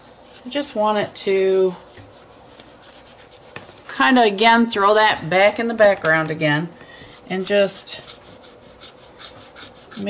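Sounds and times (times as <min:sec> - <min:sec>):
scratchy rubbing on paper: 0:00.0 - 0:04.0, 0:07.2 - 0:10.0.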